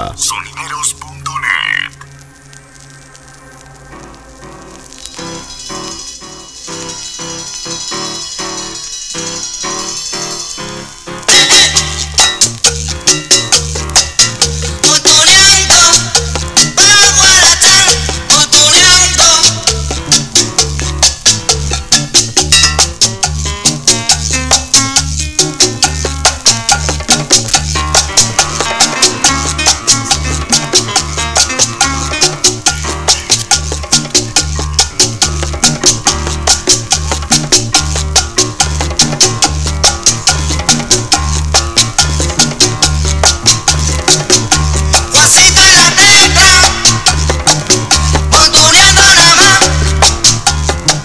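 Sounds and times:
salsa dance music over speakers: 0:04.3 - 0:51.0.

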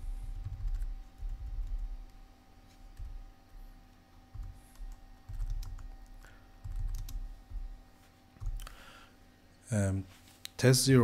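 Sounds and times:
keyboard typing clicks: 0:00.4 - 0:02.2, 0:04.3 - 0:07.7.

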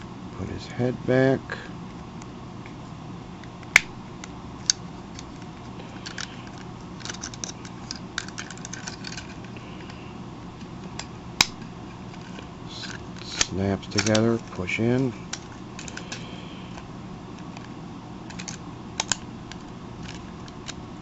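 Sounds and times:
steady low hum: 0:00.0 - 0:21.0
small rattles: 0:04.6 - 0:10.1, 0:17.4 - 0:20.8
plastic toy parts clicking: 0:06.0 - 0:09.4, 0:12.1 - 0:14.6, 0:18.3 - 0:20.8.

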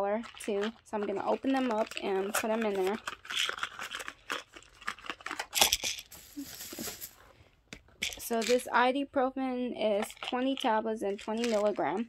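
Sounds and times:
packaging crinkling: 0:00.2 - 0:07.4, 0:11.1 - 0:11.8.

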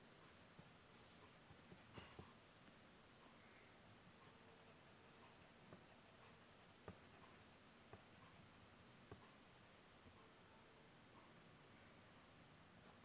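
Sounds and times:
pencil scratching on paper: 0:04.3 - 0:09.8.

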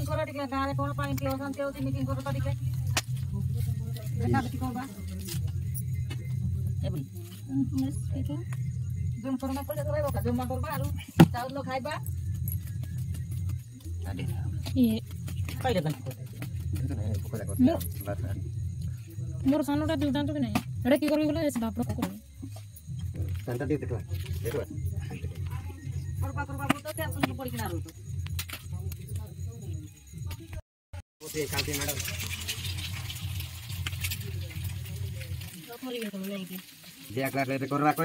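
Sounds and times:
people talking: 0:00.0 - 0:08.6, 0:09.2 - 0:12.1, 0:13.7 - 0:18.5, 0:19.1 - 0:22.4, 0:23.2 - 0:28.0, 0:31.2 - 0:32.9, 0:33.9 - 0:38.0.

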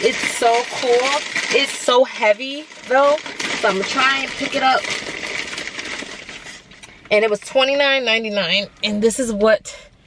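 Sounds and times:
rustling and handling noise: 0:00.0 - 0:07.4.

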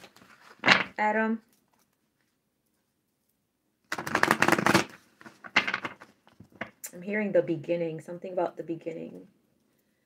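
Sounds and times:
cards being shuffled: 0:00.0 - 0:00.9, 0:03.9 - 0:06.7.

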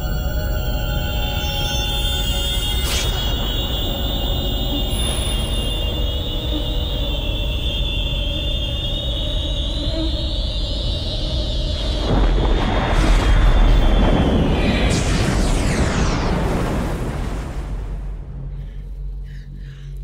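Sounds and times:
high ringing tone: 0:00.0 - 0:10.5
rushing blast: 0:12.0 - 0:18.6.

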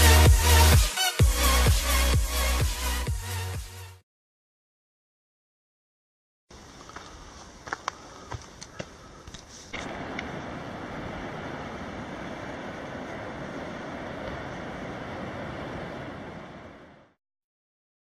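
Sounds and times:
footsteps on forest trail: 0:06.5 - 0:10.2
low hiss: 0:09.7 - 0:16.9
outdoor rushing noise: 0:09.8 - 0:17.1.

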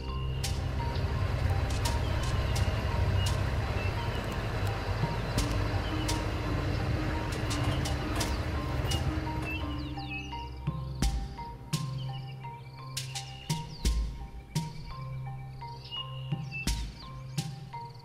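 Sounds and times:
vehicle engine rumble: 0:00.0 - 0:18.0
vehicle knocks and rattles: 0:00.4 - 0:09.9.

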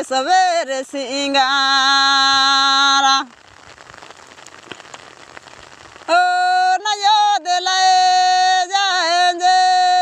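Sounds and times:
faint outdoor hiss with crackles: 0:00.0 - 0:10.0
person singing a long note: 0:06.1 - 0:10.0.

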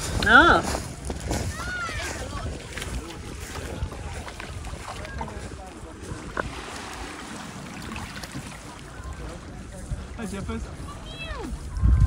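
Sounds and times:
small waves lapping: 0:00.0 - 0:11.9
faint voices: 0:00.0 - 0:12.0
wind buffeting microphone: 0:00.0 - 0:12.0.

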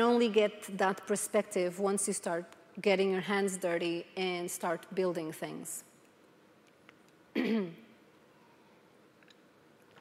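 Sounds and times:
woman clearing her throat: 0:07.3 - 0:07.9.

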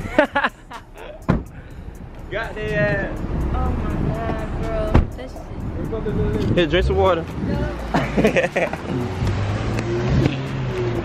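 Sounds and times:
man laughing: 0:00.0 - 0:01.3, 0:07.8 - 0:09.2
car engine humming: 0:00.0 - 0:11.0.

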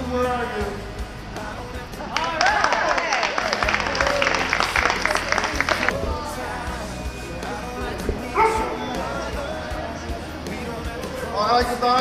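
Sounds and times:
background music: 0:00.0 - 0:12.0
low voices: 0:00.0 - 0:12.0
dog barking: 0:08.4 - 0:08.8.

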